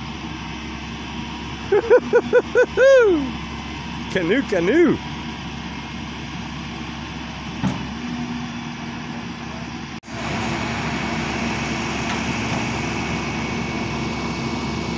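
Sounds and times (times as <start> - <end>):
diesel engine idling: 0.0 - 14.9.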